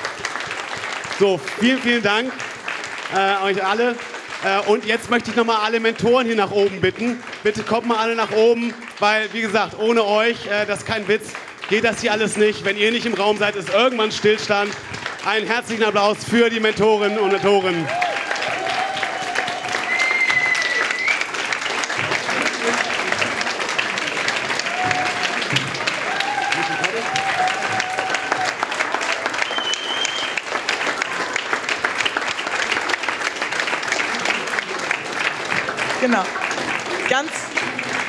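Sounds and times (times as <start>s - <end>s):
audience applauding: 0.0s - 38.0s.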